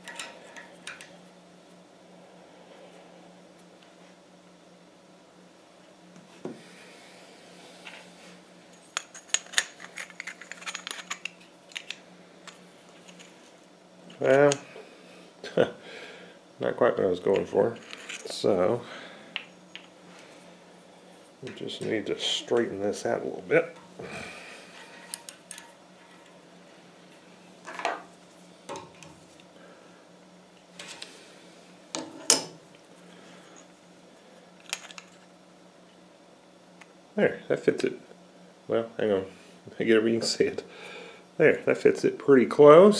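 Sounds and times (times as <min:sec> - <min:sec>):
steady low hum: 0:00.0 - 0:42.9
steel wire clicking and clinking: 0:24.8 - 0:26.4.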